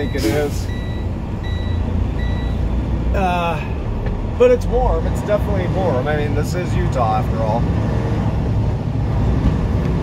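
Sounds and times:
short electronic warning beeps: 0.0 - 2.6
truck engine rumbling: 0.0 - 10.0.

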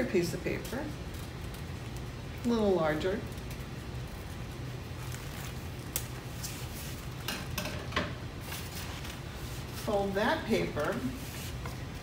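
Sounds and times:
low room hum: 0.0 - 12.0
paper rustling: 4.0 - 7.3, 8.4 - 12.0.

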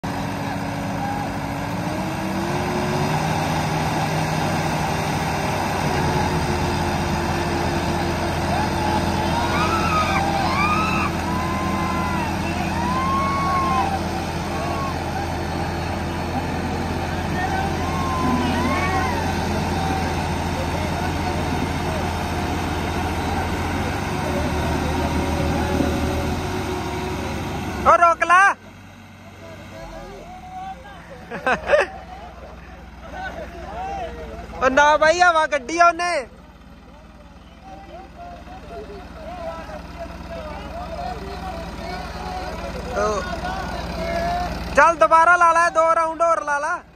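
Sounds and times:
tractor diesel engines under load: 0.0 - 46.9
men shouting: 8.1 - 22.3.

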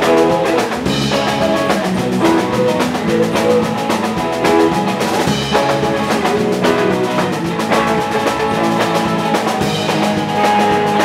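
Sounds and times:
drum kit: 0.0 - 11.0
electric bass: 0.0 - 11.0
electric guitars: 0.0 - 11.0.

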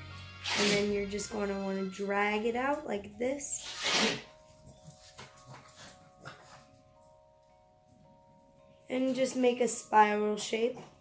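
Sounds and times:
dog sneezing: 3.6 - 4.3.

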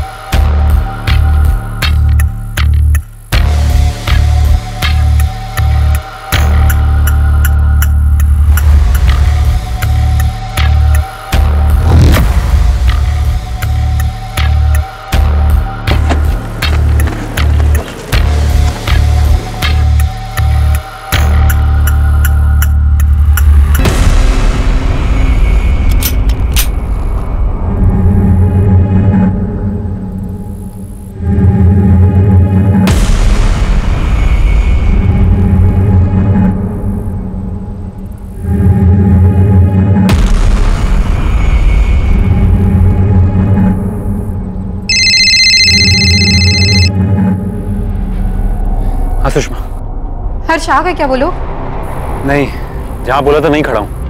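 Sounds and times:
tense score with low drone: 0.0 - 54.0
high electronic tone: 44.9 - 46.9.

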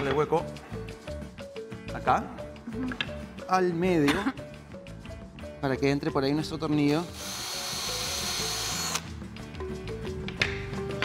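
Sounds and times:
cordless drill boring wood: 7.2 - 9.1.

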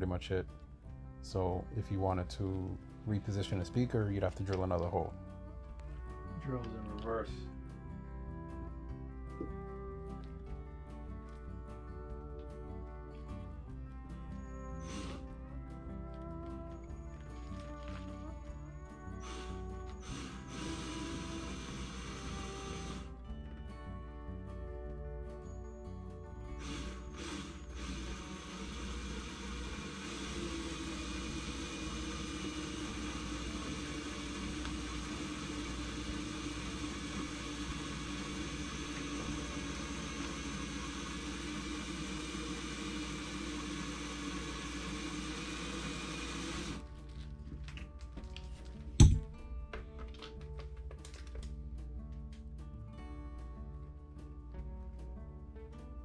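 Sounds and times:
background music: 0.0 - 56.0
cordless drill boring: 14.4 - 15.3, 16.7 - 23.2, 26.4 - 46.8.

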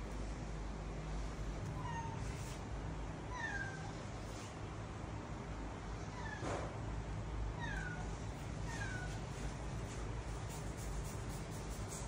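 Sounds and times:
steady low hum: 0.0 - 12.0
high-pitched animal cries: 3.3 - 3.9, 7.6 - 9.2.

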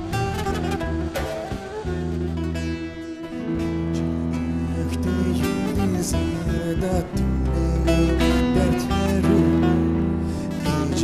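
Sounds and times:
nylon-string guitar plucked: 0.0 - 11.0
sliding melody line: 0.0 - 11.0
sustained bass: 0.0 - 11.0.

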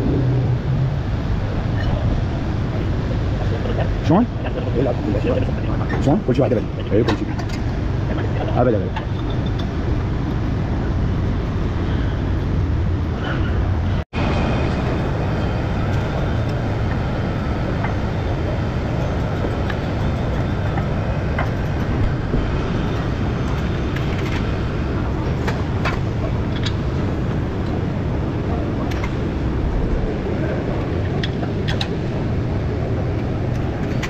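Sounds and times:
workshop low rumble: 0.0 - 34.0.

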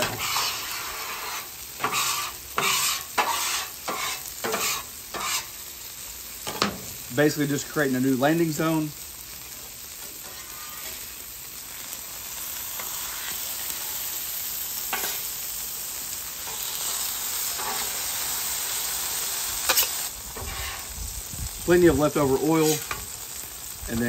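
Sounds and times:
steaks sizzling in oil: 0.0 - 24.0.

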